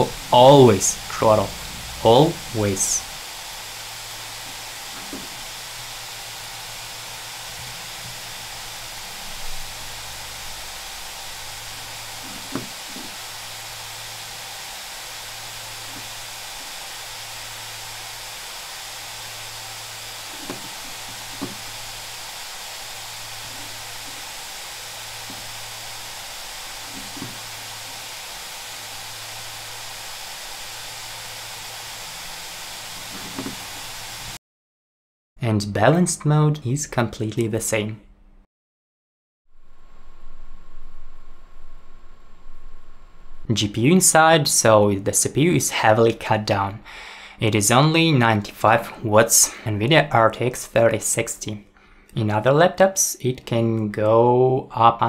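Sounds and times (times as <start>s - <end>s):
laptop fans whooshing: 0.0s - 34.4s
pulsing low hum: 1.0s - 34.4s, 39.5s - 43.5s.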